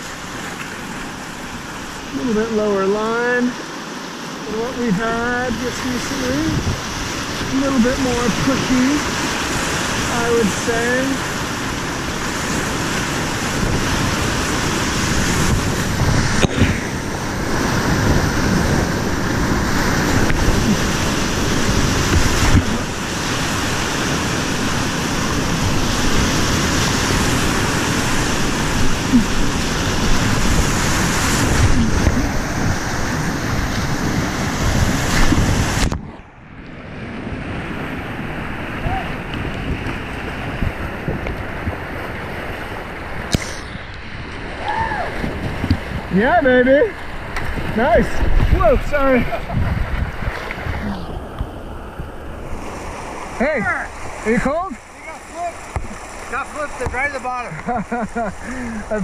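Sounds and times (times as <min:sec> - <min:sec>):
whitewater rapids rushing: 0:00.0 - 0:36.4, 0:37.1 - 0:59.0
wind buffeting microphone: 0:04.5 - 0:57.1.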